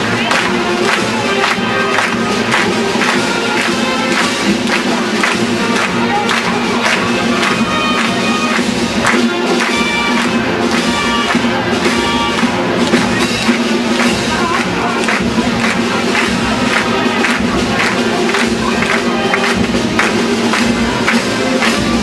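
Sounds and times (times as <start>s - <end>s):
marching band playing: 0.0s - 22.0s
steady drum beat: 0.0s - 22.0s.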